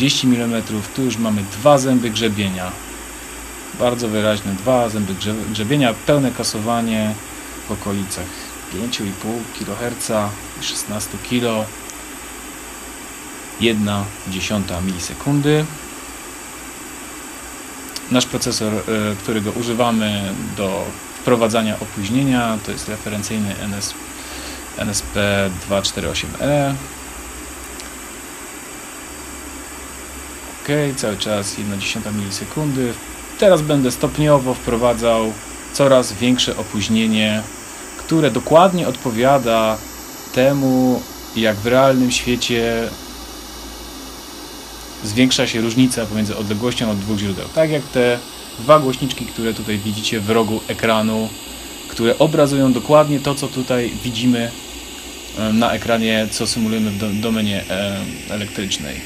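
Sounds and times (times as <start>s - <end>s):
man's voice: 0.0s - 2.8s, 3.8s - 11.7s, 24.8s - 26.9s, 30.7s - 39.8s, 40.4s - 43.0s, 45.0s - 54.6s, 55.4s - 59.0s
steady low hiss: 0.0s - 59.0s.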